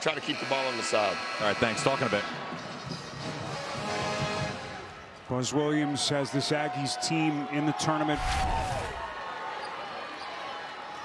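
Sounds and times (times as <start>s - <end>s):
crowd and court noise: 0.0s - 11.0s
rushing whoosh: 8.2s - 9.2s.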